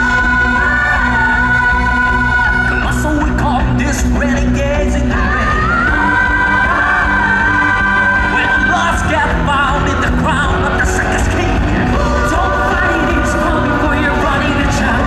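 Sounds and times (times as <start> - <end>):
live pop-rock band: 0.0 - 15.0.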